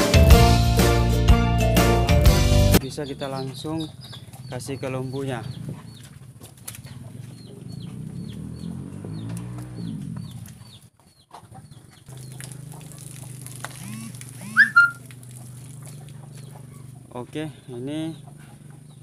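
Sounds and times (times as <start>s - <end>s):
chickens clucking: 2.8s - 19.0s
loud brief squawk: 14.4s - 15.0s
short high chirps: 14.4s - 15.0s.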